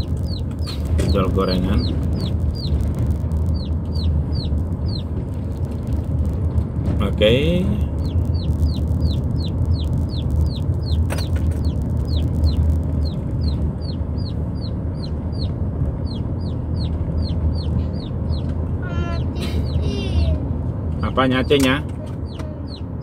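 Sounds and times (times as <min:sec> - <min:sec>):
chickens peeping: 0:00.0 - 0:05.2, 0:07.8 - 0:20.0
car driving drone: 0:00.0 - 0:23.0.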